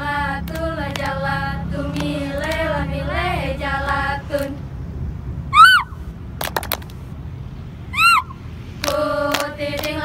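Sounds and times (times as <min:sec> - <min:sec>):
high-pitched cry: 0:05.5 - 0:06.0, 0:07.9 - 0:08.4
hand claps and body slaps: 0:06.4 - 0:07.0.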